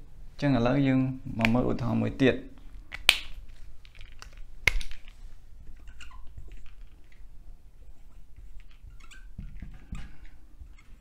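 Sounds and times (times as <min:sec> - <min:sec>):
marker squeaking on whiteboard: 0:07.8 - 0:11.0.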